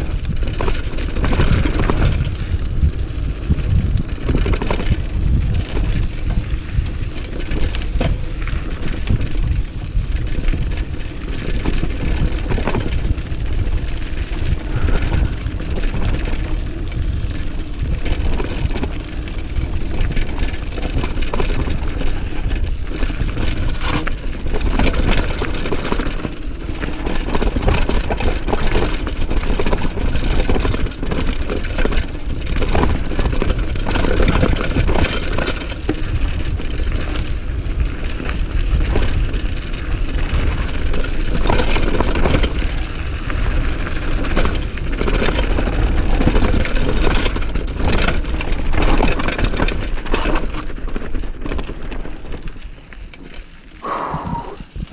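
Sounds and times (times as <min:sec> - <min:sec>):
wind on microphone: 0:00.0 - 0:25.3, 0:53.8 - 0:54.9
bike rattles and knocks: 0:00.0 - 0:54.1
tyres rumbling on gravel: 0:00.0 - 0:54.9.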